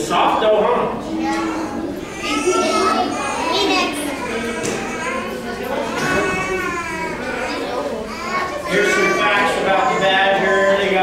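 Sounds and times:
children talking and calling out: 0.7s - 11.0s.

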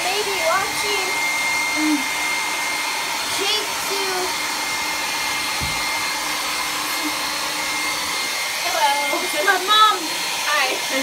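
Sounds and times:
hair dryer blowing: 0.0s - 11.0s.

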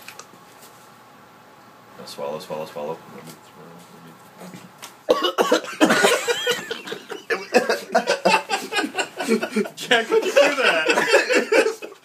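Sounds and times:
man coughing and sputtering: 5.1s - 11.8s.

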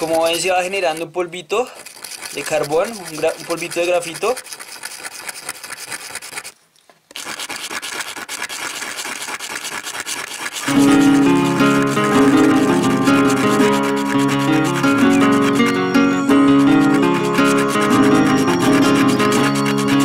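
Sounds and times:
pencil tip scratching on sandpaper: 0.0s - 20.0s
background music with plucked notes: 10.7s - 20.0s.

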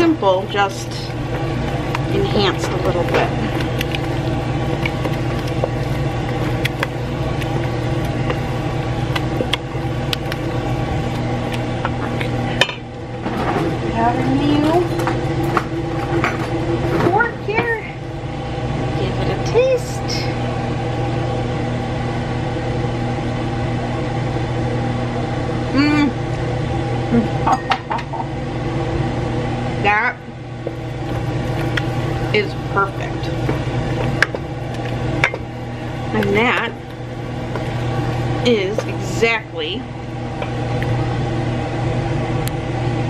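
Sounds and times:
wooden spoon scraping metal pot: 0.0s - 12.6s, 30.7s - 39.6s
range hood fan humming: 0.0s - 43.0s.

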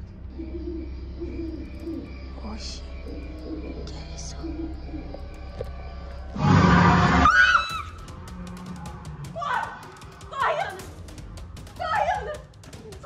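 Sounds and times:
eerie background music: 0.0s - 13.0s
loud sudden noise: 6.4s - 7.3s
woman screaming: 7.2s - 7.9s.

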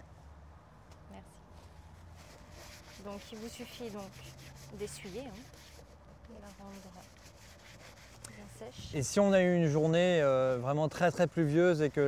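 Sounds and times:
cloth rubbing rubber boot: 1.6s - 8.2s.

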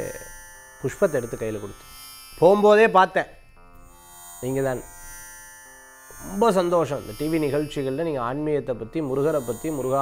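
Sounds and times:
faint buzzing hum: 0.0s - 10.0s
man talking: 0.9s - 1.8s, 2.4s - 3.3s, 6.2s - 10.0s.

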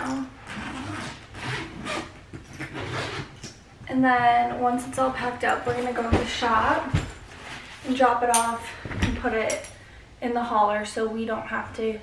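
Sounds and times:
suitcase rubbing and scraping: 0.4s - 3.6s, 6.0s - 8.0s.

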